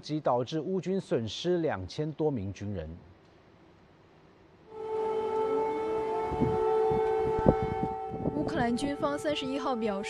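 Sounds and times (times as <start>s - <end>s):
air-raid siren: 4.7s - 10.0s.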